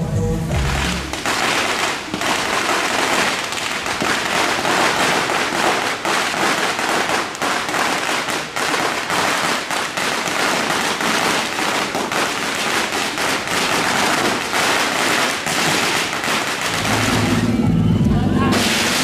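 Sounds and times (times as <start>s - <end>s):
firecrackers crackling: 0.4s - 19.0s.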